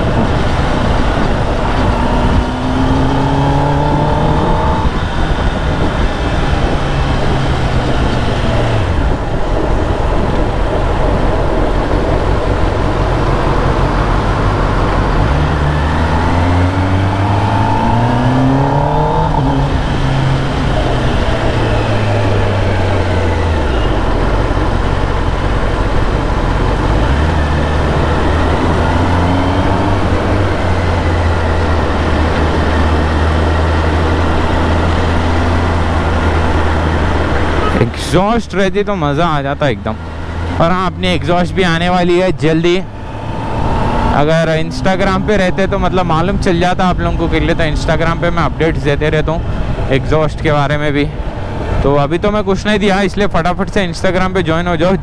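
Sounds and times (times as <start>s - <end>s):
wind rush: 0.0s - 54.8s
motorcycle engine: 0.0s - 55.0s.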